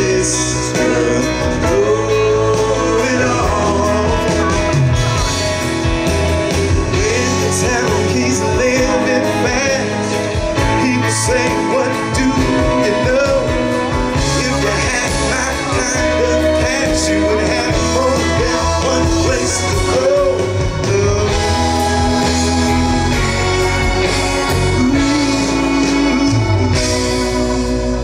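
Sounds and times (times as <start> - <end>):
live band playing instrumental: 0.0 - 28.0.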